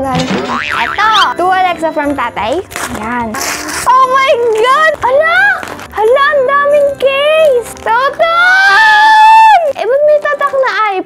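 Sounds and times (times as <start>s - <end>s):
springy cartoon wobbling glides: 0.2s - 1.4s
paper rustle: 2.5s - 10.8s.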